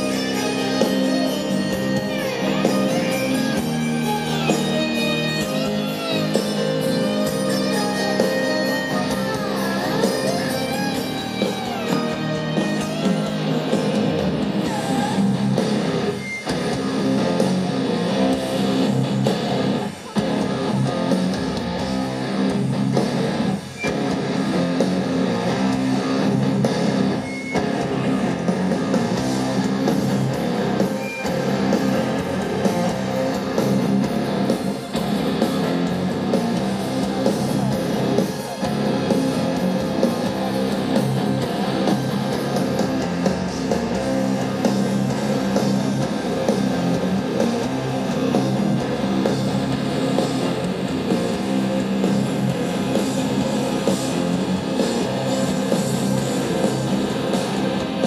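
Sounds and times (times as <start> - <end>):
electric guitar: 0.0 - 58.0
heavy metal band playing live: 0.0 - 58.0.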